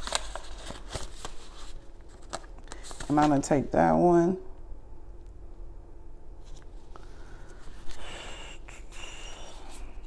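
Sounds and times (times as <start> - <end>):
cards being shuffled: 0.0 - 3.5.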